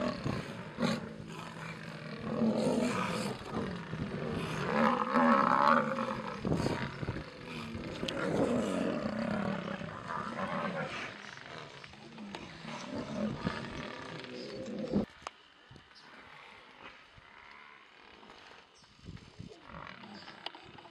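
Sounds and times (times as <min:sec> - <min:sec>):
lionesses snarling and roaring: 0:00.0 - 0:15.1, 0:19.4 - 0:20.9.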